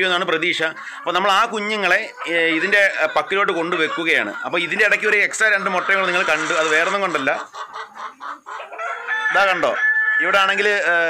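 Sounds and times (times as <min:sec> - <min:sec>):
man speaking: 0:00.0 - 0:07.5, 0:09.4 - 0:11.0
rooster crowing: 0:08.6 - 0:10.6.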